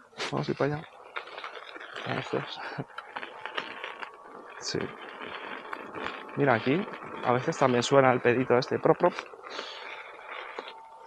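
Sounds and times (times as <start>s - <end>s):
faint motor whine: 0.0s - 11.0s
wheel rattling on dirt path: 0.0s - 11.0s.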